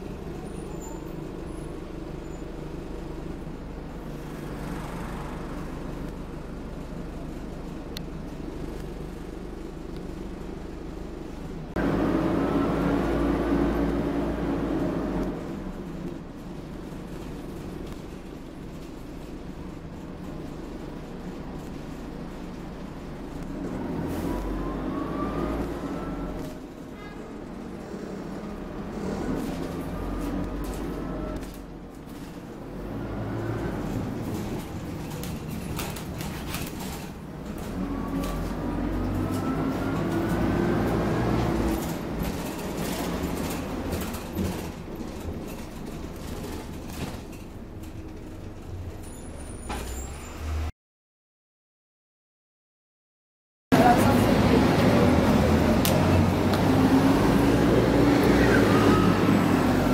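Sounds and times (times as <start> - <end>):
bus diesel engine idling: 0.0 - 25.0
bus engine rumble and whine: 0.0 - 50.7, 53.7 - 59.9.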